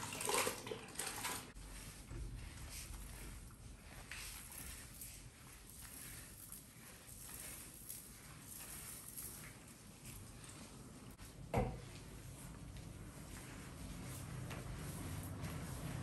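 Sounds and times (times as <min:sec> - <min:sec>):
wet mop swishing on tile floor: 0:00.0 - 0:16.0.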